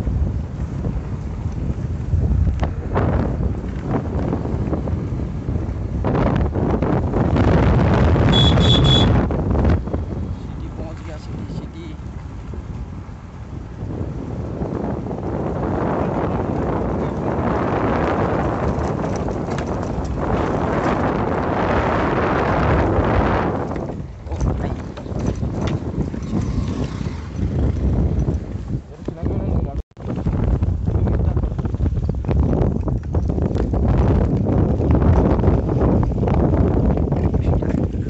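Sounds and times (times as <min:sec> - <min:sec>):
wind buffeting microphone: 0:00.0 - 0:38.0
vehicle rattling on gravel road: 0:15.7 - 0:28.9, 0:30.0 - 0:38.0.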